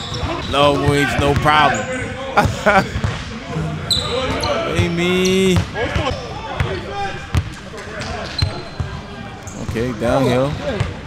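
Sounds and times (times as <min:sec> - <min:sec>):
players' voices: 0:00.2 - 0:11.0.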